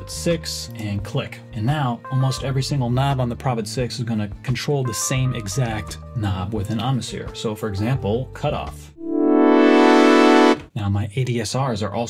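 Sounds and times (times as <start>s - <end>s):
synth held tone brightening: 9.0s - 10.6s.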